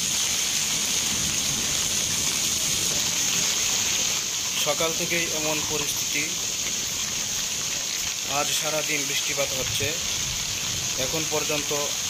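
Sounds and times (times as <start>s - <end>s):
steady rain falling: 0.0s - 12.0s.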